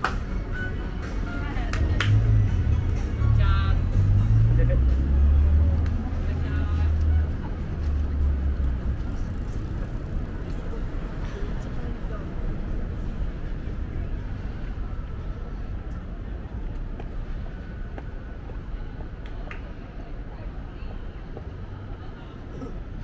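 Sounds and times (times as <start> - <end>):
music: 0.0 - 8.8
passers-by talking: 0.0 - 23.0
vehicle engine rumble: 0.0 - 23.0.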